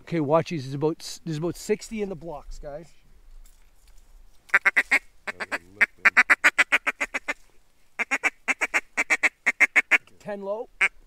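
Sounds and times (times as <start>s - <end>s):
duck call quacks: 4.5s - 7.4s, 8.0s - 10.1s, 10.8s - 11.0s.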